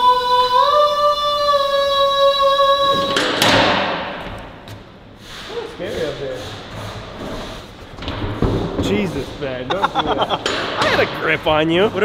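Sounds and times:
person singing a long note: 0.0s - 3.7s.

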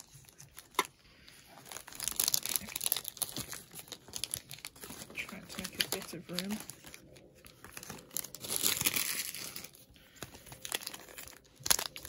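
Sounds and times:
foil wrappers crinkling: 0.0s - 12.0s.

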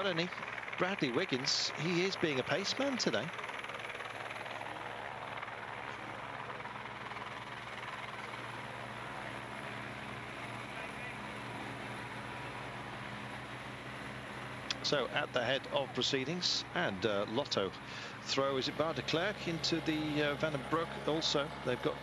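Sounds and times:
vehicle engine drone: 0.0s - 22.0s.

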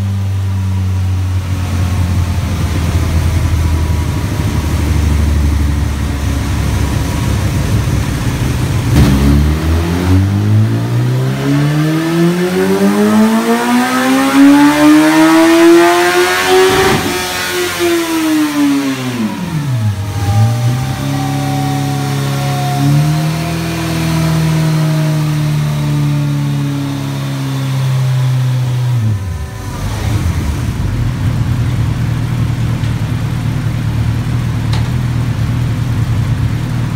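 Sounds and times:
motorcycle engine revving: 1.5s - 36.9s.

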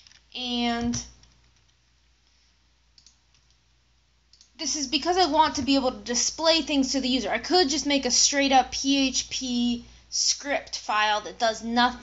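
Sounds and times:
faint computer mouse clicks: 3.0s - 3.6s, 4.3s - 4.5s.

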